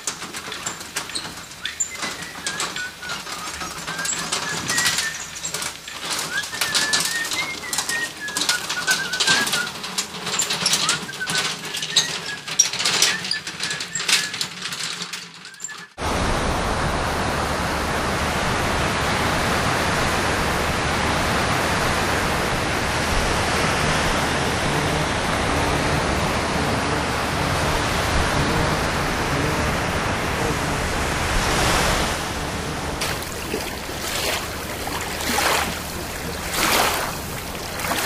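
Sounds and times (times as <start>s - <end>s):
wind: 0.0s - 38.0s
sea surf rushing: 16.0s - 38.0s.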